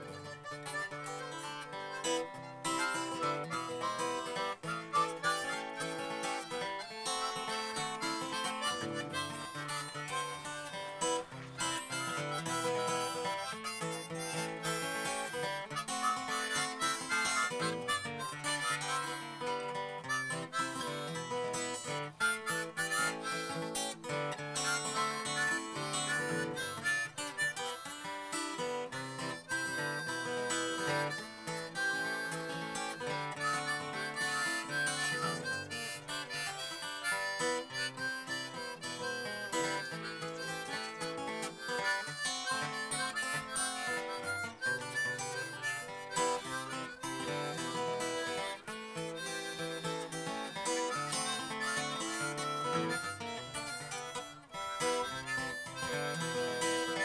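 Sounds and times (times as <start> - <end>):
acoustic guitar: 0.0 - 57.0
harmonica: 0.0 - 57.0.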